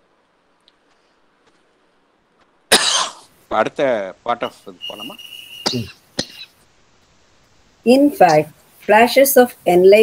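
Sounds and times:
person coughing loudly: 2.7 - 3.2, 5.6 - 6.5.

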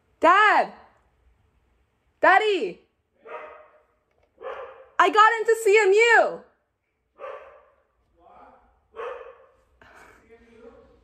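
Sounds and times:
dog barking: 3.2 - 5.0, 7.1 - 8.0, 8.9 - 9.7.

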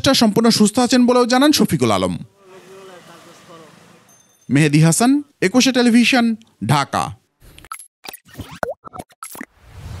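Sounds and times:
cartoon pops and clicks: 7.7 - 9.5.

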